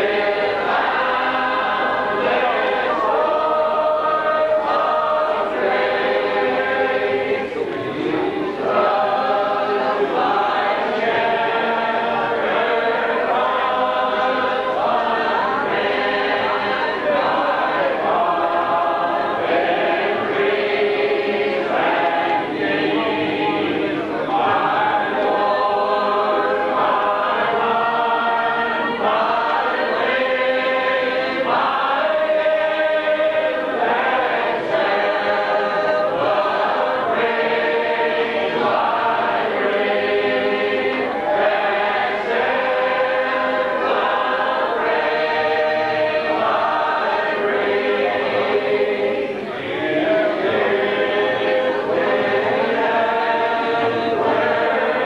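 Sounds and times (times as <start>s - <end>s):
congregation singing a hymn: 0.0s - 55.0s.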